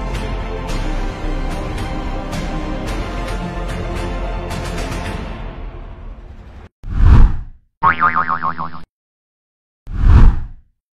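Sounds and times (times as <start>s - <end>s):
background music: 0.0s - 6.7s
wobbling cartoon boing: 7.8s - 8.9s.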